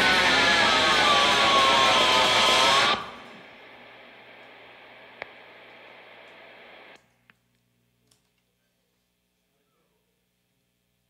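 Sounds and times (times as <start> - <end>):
rock band with electric guitars: 0.0 - 3.4.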